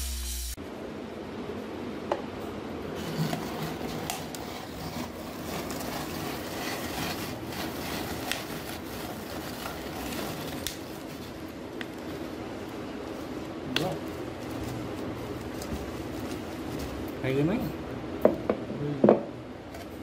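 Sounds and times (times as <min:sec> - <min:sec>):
rotary vegetable cutter grating: 0:02.9 - 0:12.3.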